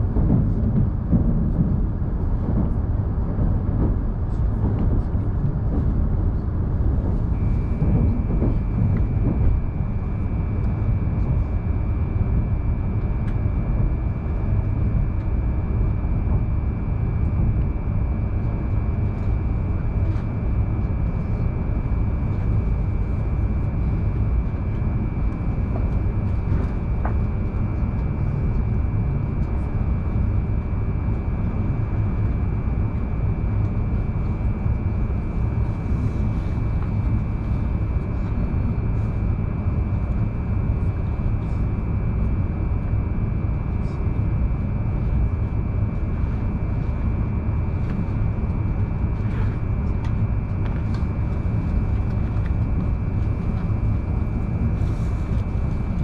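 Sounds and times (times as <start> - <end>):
train low rumble: 0.0 - 56.0
high whine: 6.5 - 56.0.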